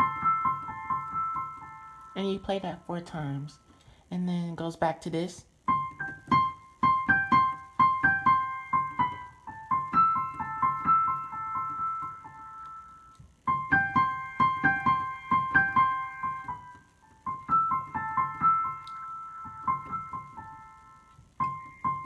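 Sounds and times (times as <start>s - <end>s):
digital piano melody: 0.0s - 3.8s, 5.6s - 22.0s.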